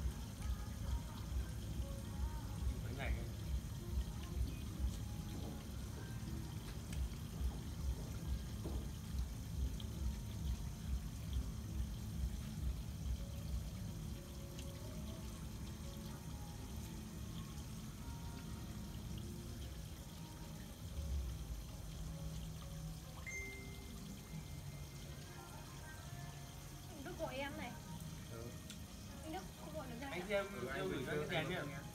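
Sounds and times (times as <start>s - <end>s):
low rhythmic thump: 0.0s - 25.2s
water trickling: 0.0s - 31.9s.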